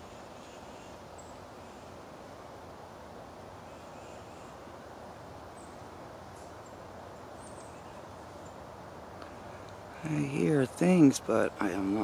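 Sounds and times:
woods ambience: 0.0s - 12.0s
bird chirps: 6.4s - 8.6s.

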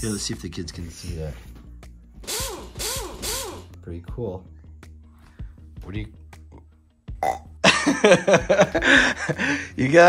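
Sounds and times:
boy burping loudly: 7.2s - 7.6s.

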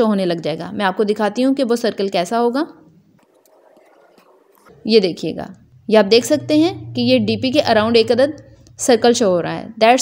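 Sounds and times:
woman speaking: 0.0s - 2.8s, 4.7s - 10.0s.

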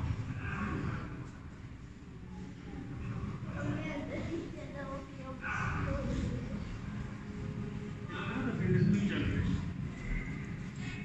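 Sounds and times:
indistinct voices: 0.0s - 11.0s
low rumble in hall: 0.0s - 11.0s.

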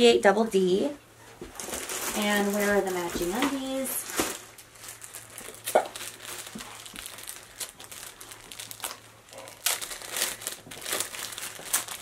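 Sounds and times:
packaging crinkling and rustling: 1.4s - 12.0s.

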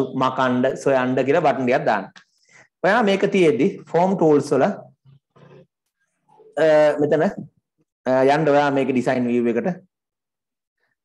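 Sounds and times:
man speaking: 6.5s - 9.9s.

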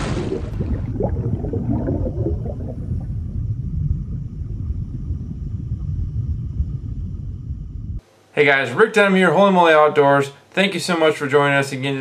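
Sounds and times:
deep underwater rumble: 0.0s - 8.0s
underwater bubbling: 0.0s - 8.0s.

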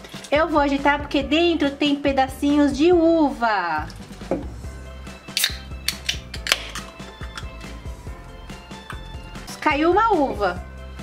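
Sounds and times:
background music: 0.0s - 11.0s
can clicks and knocks: 5.3s - 7.8s.

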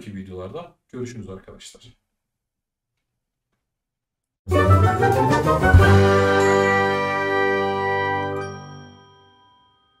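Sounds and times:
jingle ringing chord: 4.5s - 10.0s.

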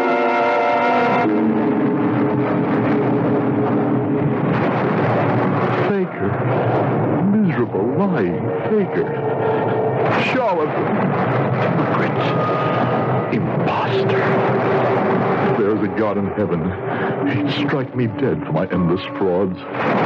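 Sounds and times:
low thunder rumbles: 0.0s - 18.8s, 19.6s - 20.0s
constant rushing noise: 0.0s - 20.0s
wind whistling and howling: 0.0s - 20.0s.

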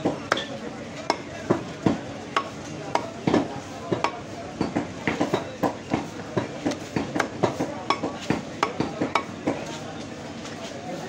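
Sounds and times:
cleaver chopping on wooden block: 0.0s - 0.5s, 1.1s - 9.6s.

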